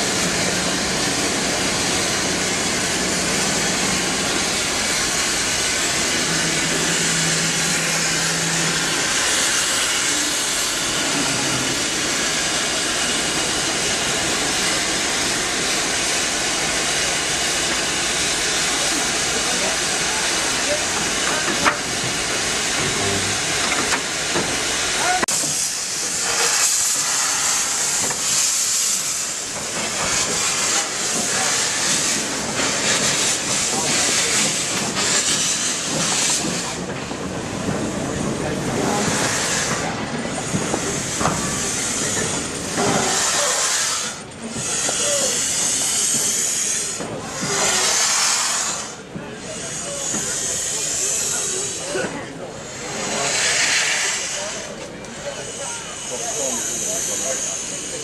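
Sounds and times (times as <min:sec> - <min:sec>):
steam locomotive blowing off steam: 0:00.0 - 0:58.0.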